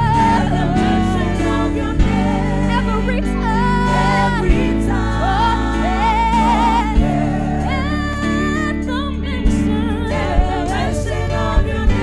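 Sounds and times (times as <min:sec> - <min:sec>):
low beats: 0:00.0 - 0:12.0
sustained musical backing: 0:00.0 - 0:12.0
woman singing gospel into microphone: 0:00.0 - 0:12.0.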